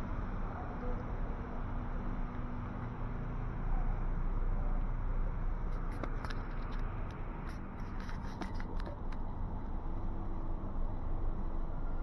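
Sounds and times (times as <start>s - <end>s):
low street rumble: 0.0s - 12.0s
light clicks and scrapes: 5.7s - 9.8s.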